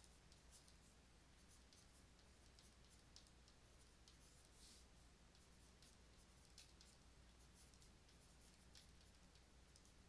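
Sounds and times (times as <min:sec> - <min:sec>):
stylus scratching on a tablet: 0:00.0 - 0:10.0.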